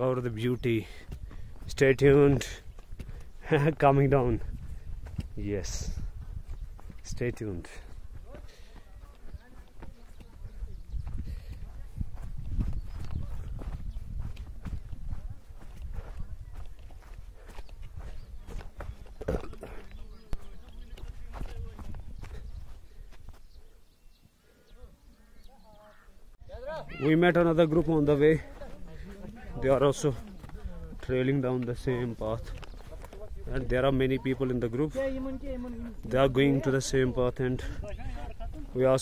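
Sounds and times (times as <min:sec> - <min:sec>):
footsteps on grass: 0:00.0 - 0:25.3, 0:25.9 - 0:39.0
wind rumbling on microphone: 0:01.0 - 0:23.8, 0:28.9 - 0:39.0
faint voices: 0:07.2 - 0:23.8.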